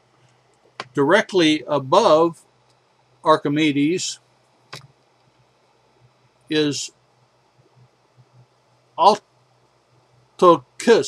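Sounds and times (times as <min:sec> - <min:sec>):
faint steady hiss: 0:00.0 - 0:11.0
low even hum: 0:00.0 - 0:11.0.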